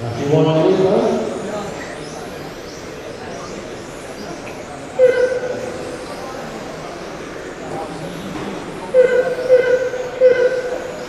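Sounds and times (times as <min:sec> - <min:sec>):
race hall background noise: 0:00.0 - 0:11.0
horn-like tone: 0:05.0 - 0:05.8, 0:08.9 - 0:11.0.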